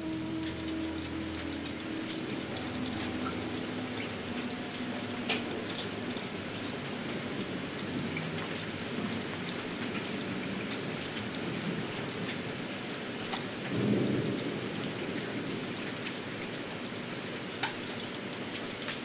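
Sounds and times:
steady rain: 0.0 - 19.0.

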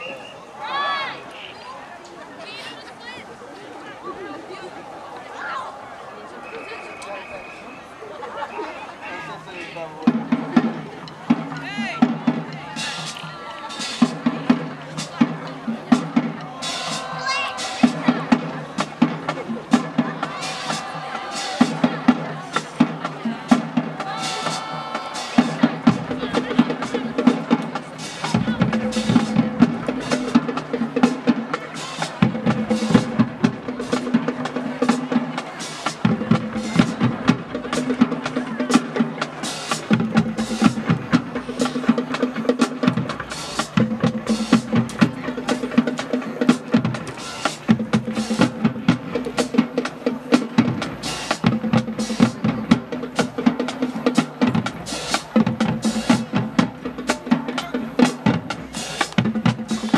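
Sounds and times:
marching band playing: 5.4 - 59.9
snare and bass drums: 10.0 - 59.9.

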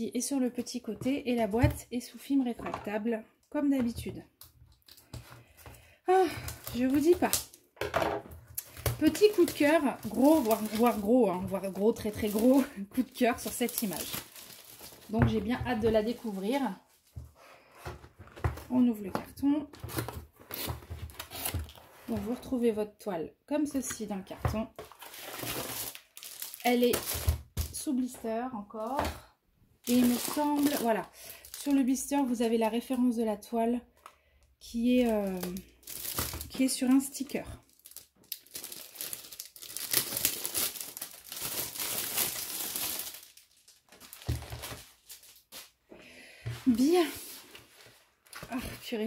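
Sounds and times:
plastic sleeve crinkling: 8.5 - 16.8, 24.8 - 27.8, 29.8 - 32.1, 34.9 - 45.8.

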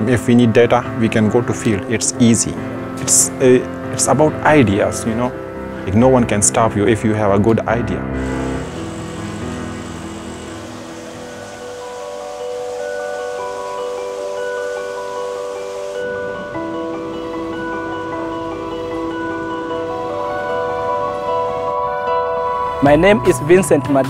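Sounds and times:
bell-like music notes: 8.6 - 24.0.

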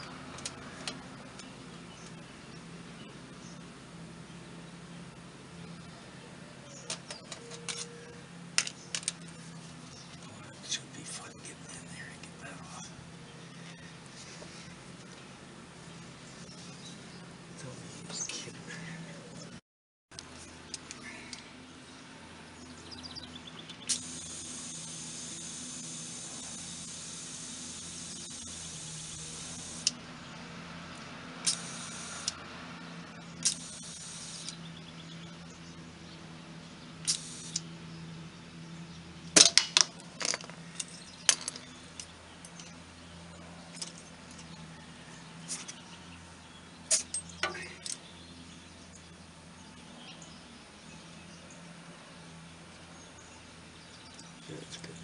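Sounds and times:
compressed air hissing: 23.8 - 30.0, 31.4 - 32.4, 33.4 - 34.6, 37.1 - 37.6.

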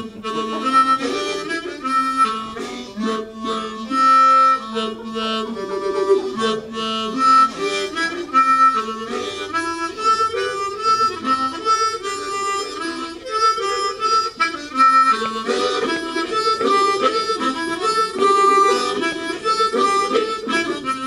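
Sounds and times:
harmonica melody: 0.0 - 21.0.

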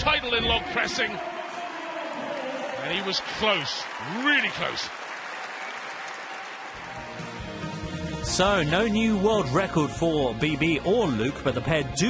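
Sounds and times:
audience applauding: 0.6 - 8.1
background music: 6.4 - 12.0.

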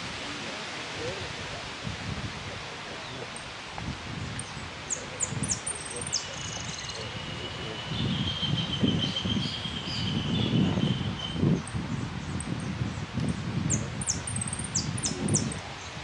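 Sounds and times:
wind buffeting microphone: 0.0 - 16.0
finch chirping: 4.4 - 12.6, 13.7 - 15.6.

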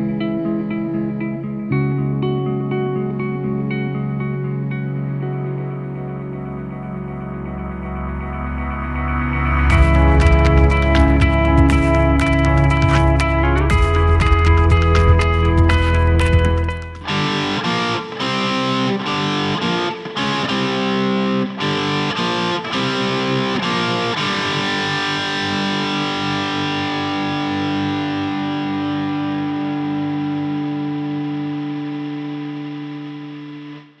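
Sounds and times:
distorted electric guitar chords: 0.0 - 34.0.

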